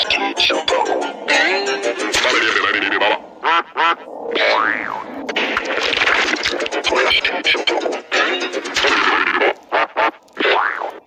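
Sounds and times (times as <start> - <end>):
music: 0.0 - 4.0, 5.4 - 10.2
warbling sounds: 0.0 - 11.0.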